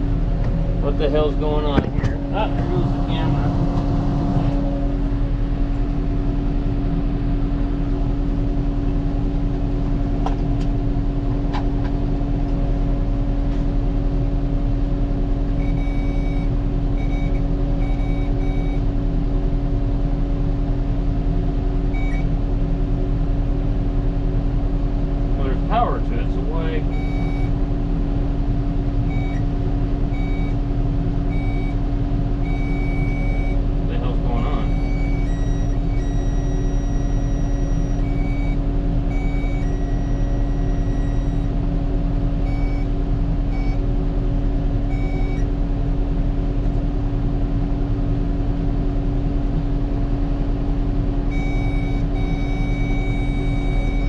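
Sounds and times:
tractor diesel engine running: 0.0 - 54.0
short electronic beeps: 15.6 - 18.9, 21.9 - 22.3, 26.8 - 27.6, 29.1 - 29.4, 30.1 - 30.6, 31.3 - 31.8, 32.4 - 33.6, 34.4 - 41.5, 42.5 - 42.9, 43.5 - 43.8, 44.9 - 45.5, 51.3 - 54.0.

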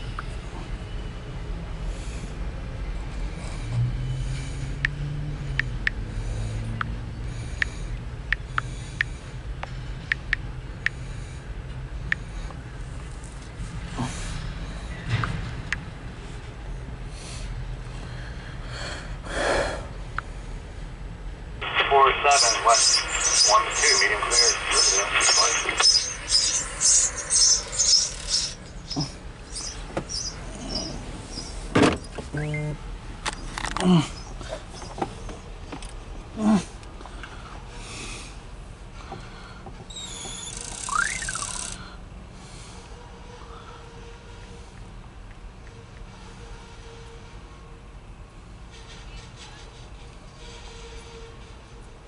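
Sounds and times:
freight train wheels squeaking: 24.8 - 32.2, 39.9 - 41.9, 48.7 - 51.8.

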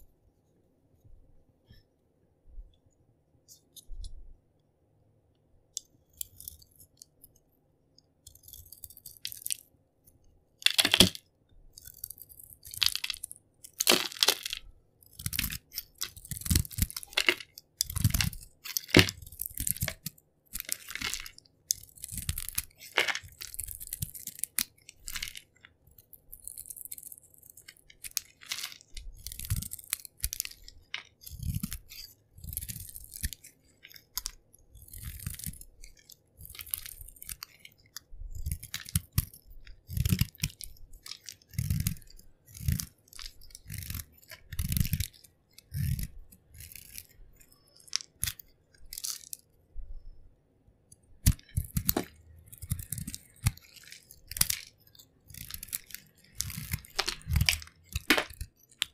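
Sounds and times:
knife carving soap: 3.4 - 4.4, 5.3 - 58.9.

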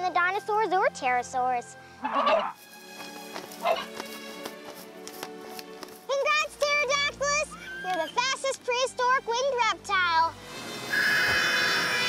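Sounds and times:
background music with sustained notes: 0.0 - 12.0
harsh squawking bird call: 10.9 - 12.0.

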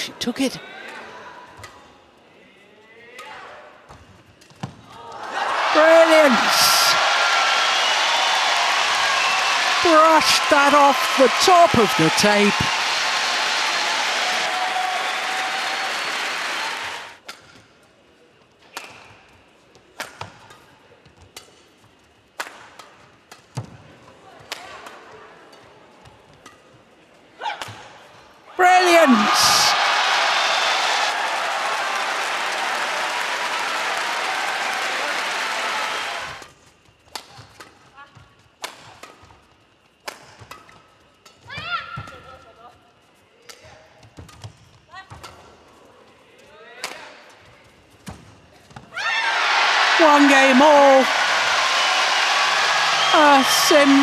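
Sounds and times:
crowd cheering and applauding: 5.2 - 17.2, 28.6 - 36.4, 49.0 - 54.0
person shouting: 5.7 - 7.0, 9.8 - 12.7, 28.6 - 29.7, 50.0 - 51.2, 53.0 - 54.0.

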